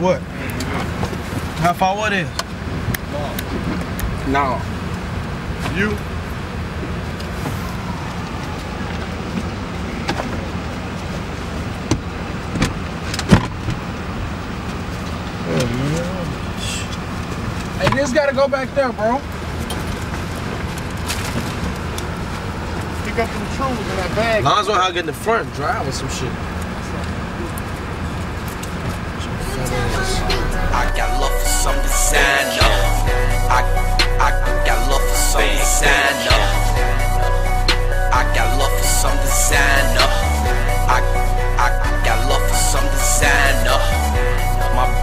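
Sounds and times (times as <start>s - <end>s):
car engine rumble in cabin: 0.0s - 45.0s
faint voices: 29.1s - 32.9s
brief voice: 29.4s - 30.8s.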